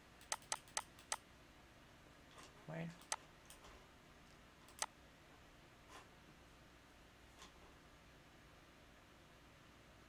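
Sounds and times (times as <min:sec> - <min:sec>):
computer mouse clicks: 0:00.2 - 0:01.2, 0:02.4 - 0:03.7, 0:04.6 - 0:04.9.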